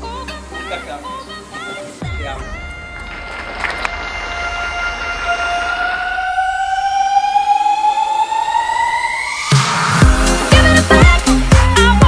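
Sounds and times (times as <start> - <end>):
synthesizer riser gliding upward: 2.0 - 11.5.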